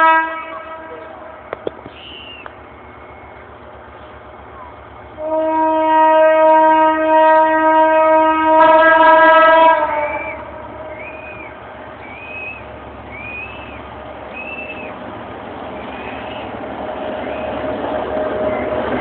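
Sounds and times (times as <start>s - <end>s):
locomotive air horn: 0.0s - 2.4s, 5.2s - 11.5s
train rumble: 0.0s - 19.0s
second horn chord: 5.2s - 10.2s.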